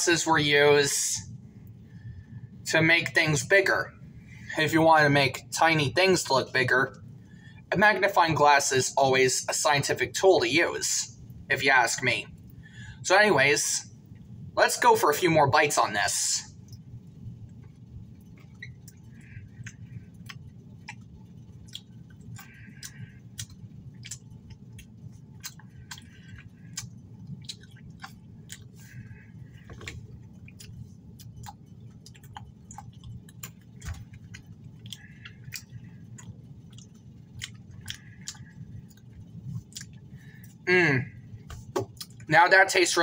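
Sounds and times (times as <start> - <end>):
steady low hum: 0.0 - 43.0
person chewing candy: 18.2 - 40.6.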